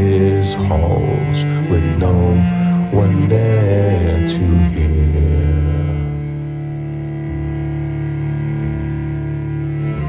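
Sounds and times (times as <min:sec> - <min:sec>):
slow dark sustained music: 0:00.0 - 0:10.0.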